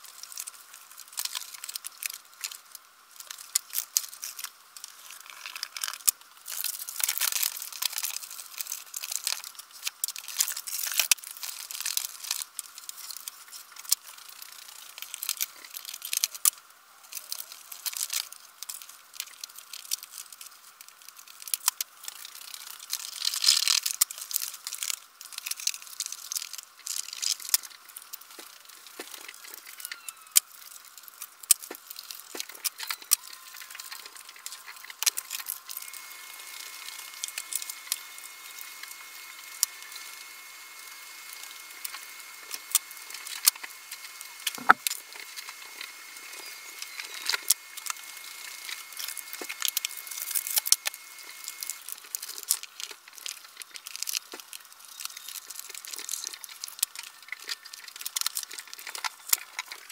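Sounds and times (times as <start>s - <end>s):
paper crinkling and rustling: 17.1s - 37.8s, 44.5s - 59.9s.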